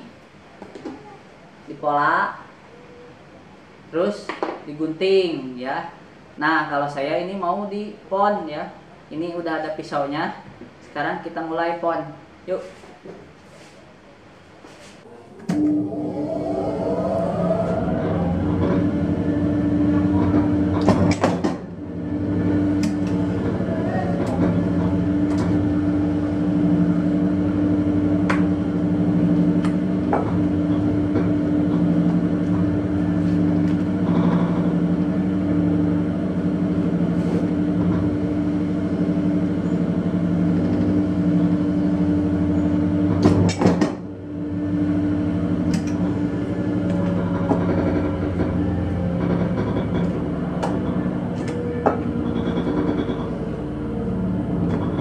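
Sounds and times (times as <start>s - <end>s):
press motor and pump hum: 15.0s - 55.0s.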